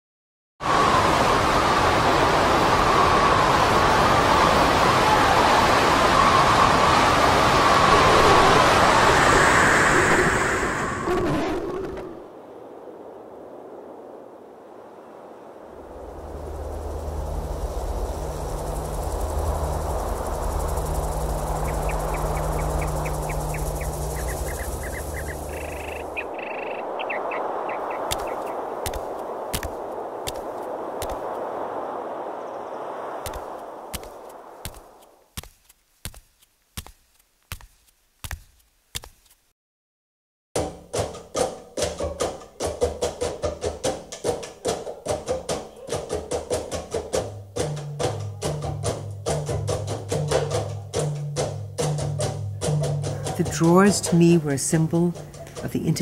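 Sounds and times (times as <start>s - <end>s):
howling wind and driving rain: 0.6s - 35.3s
low drone: 15.7s - 26.2s.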